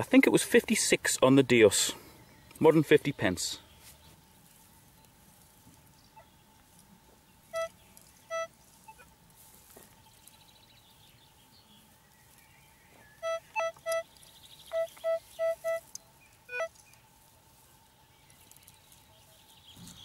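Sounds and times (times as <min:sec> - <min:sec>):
metal detector beeps: 0:07.5 - 0:09.1, 0:13.2 - 0:14.1, 0:14.7 - 0:15.9, 0:16.5 - 0:16.7.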